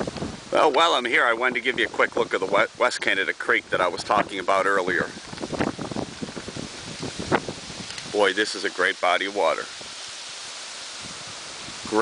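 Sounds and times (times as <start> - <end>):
river rushing over riffles: 0.0 - 12.0.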